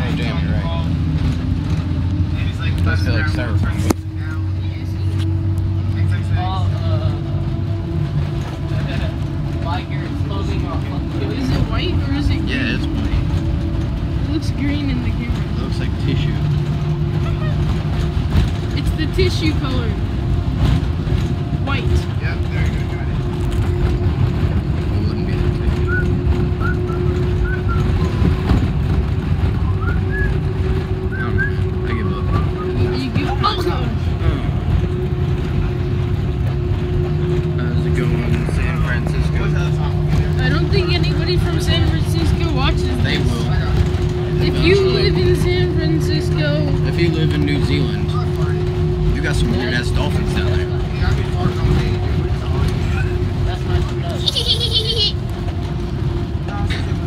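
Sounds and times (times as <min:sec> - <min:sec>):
bus engine hum: 0:00.0 - 0:57.0
lower engine hum: 0:00.0 - 0:57.0
passengers chatting: 0:00.0 - 0:57.0.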